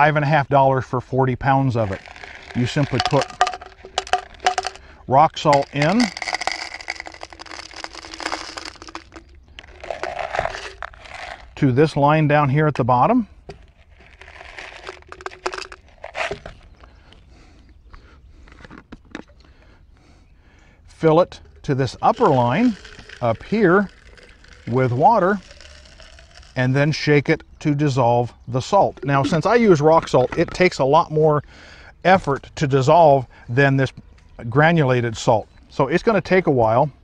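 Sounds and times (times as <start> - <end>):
salt crystals rattling into bottle: 1.8 - 11.6, 13.5 - 16.7, 21.2 - 27.0, 28.9 - 30.7
salt chunks clicking into plastic bottle: 2.0 - 4.8.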